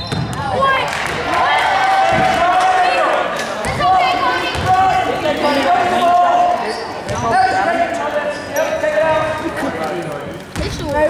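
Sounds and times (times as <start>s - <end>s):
basketball bouncing on wooden floor: 10.5s - 11.0s.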